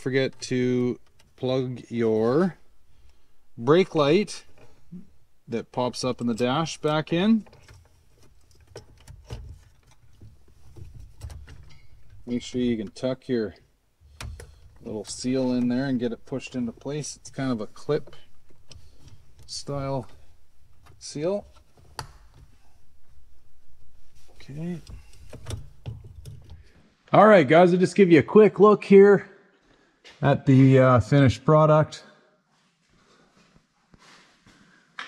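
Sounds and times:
hands handling parts clicking: 0:14.2 - 0:15.8.

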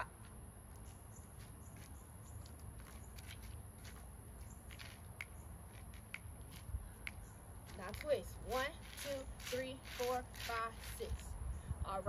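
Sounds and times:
footsteps and shoe scuffs: 0:00.2 - 0:11.2.

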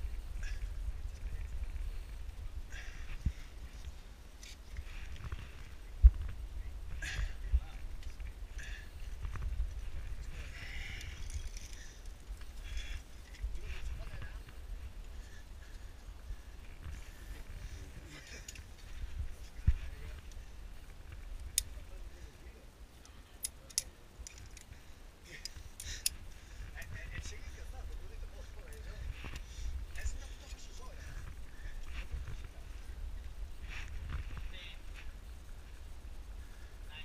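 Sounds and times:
wind rumble on microphone: 0:00.0 - 0:22.7, 0:26.1 - 0:37.0
carabiner metallic clicks: 0:23.4 - 0:24.7.

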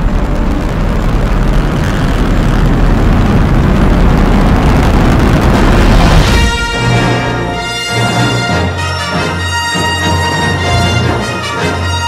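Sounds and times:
starship engine roar: 0:00.0 - 0:11.1.

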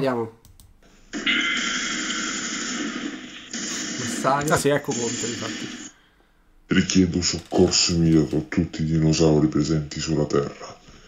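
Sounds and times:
steady harsh hiss: 0:01.1 - 0:06.0.

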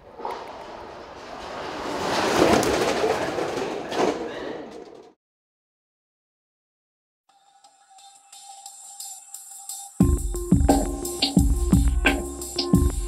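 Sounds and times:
sled runners scraping on ice: 0:00.2 - 0:03.7.

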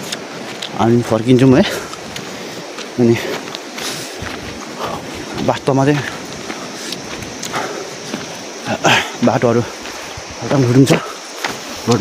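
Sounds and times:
footsteps on dirt trail: 0:00.0 - 0:12.0
steady hiss: 0:00.0 - 0:12.0
man talking: 0:00.6 - 0:02.0, 0:02.9 - 0:03.5, 0:04.8 - 0:06.3, 0:08.6 - 0:11.2, 0:11.8 - 0:12.0.

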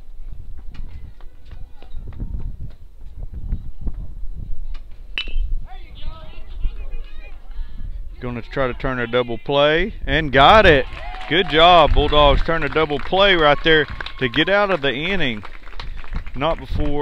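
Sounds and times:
wind rumble on microphone: 0:00.0 - 0:14.4, 0:15.1 - 0:17.0
metal bat hitting ball: 0:05.2 - 0:05.5
people shouting and yelling: 0:05.6 - 0:15.4.

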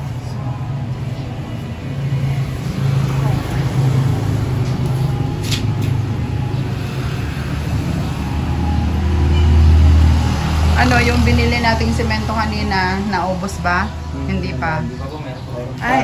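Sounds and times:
road traffic rumble: 0:00.0 - 0:16.0
vehicle passing close: 0:00.0 - 0:16.0.

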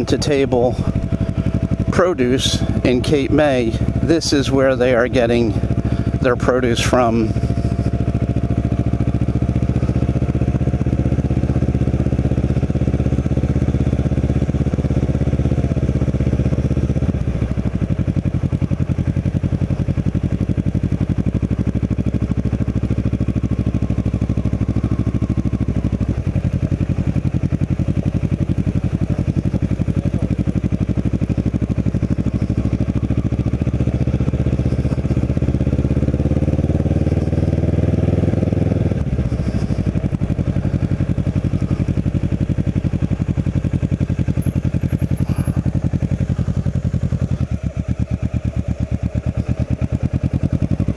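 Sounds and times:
motorcycle engine running at low revs: 0:00.0 - 0:50.9.

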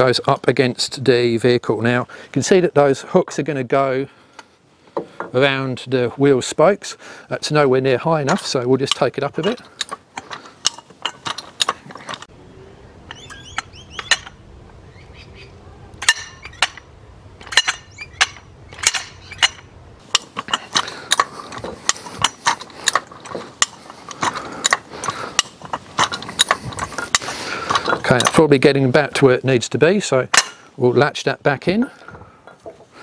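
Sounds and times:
jack ratcheting metallic clicks: 0:08.3 - 0:12.3, 0:13.1 - 0:14.4, 0:16.0 - 0:28.6.

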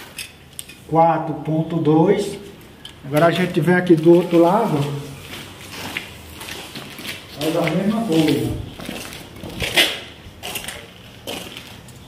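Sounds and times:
footsteps scuffing on concrete: 0:03.2 - 0:12.0.

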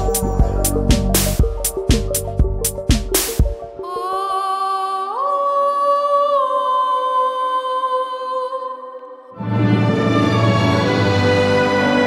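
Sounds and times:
wordless vocal music: 0:00.0 - 0:02.3.

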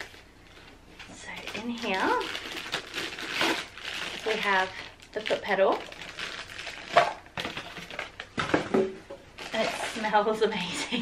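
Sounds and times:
plastic bag rustling: 0:00.0 - 0:11.0.

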